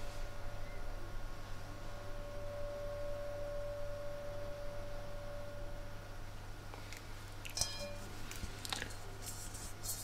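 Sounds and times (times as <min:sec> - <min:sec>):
low steady hum: 0:00.0 - 0:10.0
singing bowl ringing: 0:01.8 - 0:06.0, 0:07.6 - 0:08.1.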